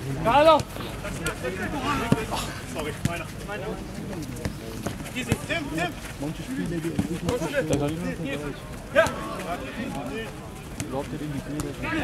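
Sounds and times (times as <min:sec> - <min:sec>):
men calling out: 0:00.2 - 0:03.3.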